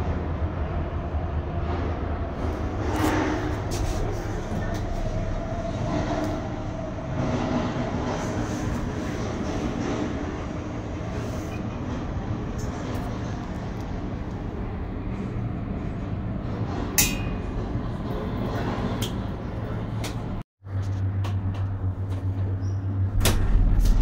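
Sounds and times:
cable car rumble and hiss: 0.0 - 24.0.

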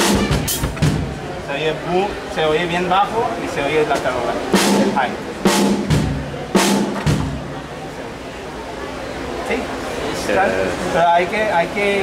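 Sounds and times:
deep bass drum thuds: 0.0 - 1.3, 4.6 - 7.6.

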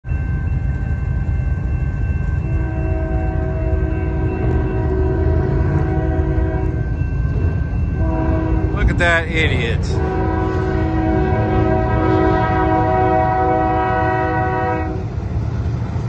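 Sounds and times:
low train rumble: 0.0 - 16.0
train air horn blast: 2.6 - 6.8, 8.0 - 15.1.

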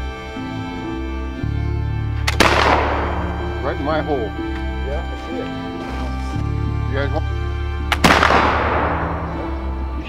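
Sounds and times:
rifle shot: 2.3 - 3.5, 7.9 - 9.6.

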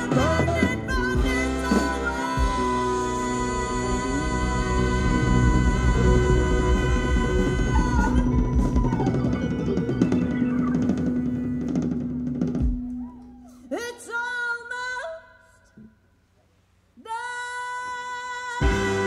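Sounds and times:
woman singing: 0.0 - 9.4, 13.6 - 15.6, 17.0 - 19.0
live band playing: 0.0 - 13.7, 18.6 - 19.0.

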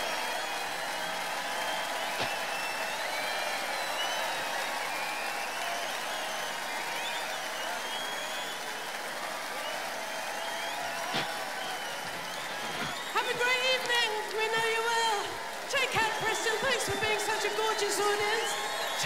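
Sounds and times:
crowd applauding: 0.0 - 19.0
crowd cheers and shouts: 0.0 - 19.0.

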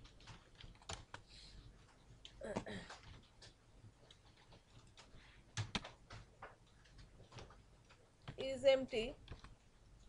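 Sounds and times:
computer keyboard typing: 0.0 - 9.7.

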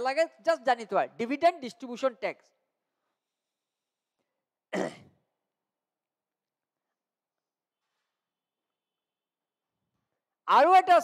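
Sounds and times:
man clearing throat: 4.7 - 5.3.

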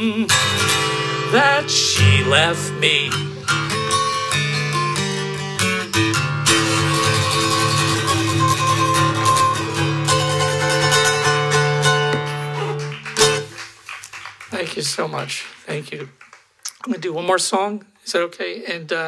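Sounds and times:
acoustic guitar strumming: 0.0 - 13.6.

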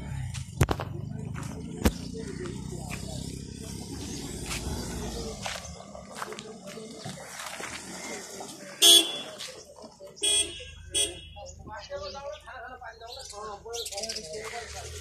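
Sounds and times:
murmur of voices: 0.0 - 15.0
vehicle horn toots: 8.8 - 9.4, 10.2 - 11.5.

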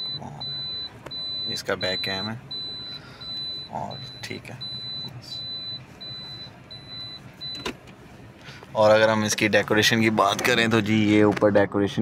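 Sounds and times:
high-pitched reversing beeps: 0.0 - 7.7.

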